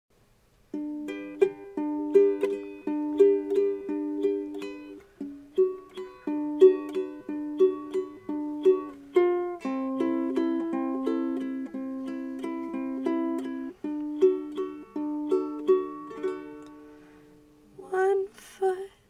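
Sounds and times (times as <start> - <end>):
ukulele strumming chords: 0.6 - 18.2.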